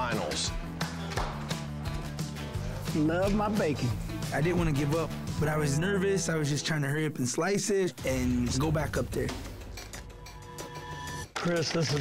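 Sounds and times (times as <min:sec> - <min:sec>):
background music with bass: 0:00.0 - 0:11.2
percussive hits: 0:00.7 - 0:01.8.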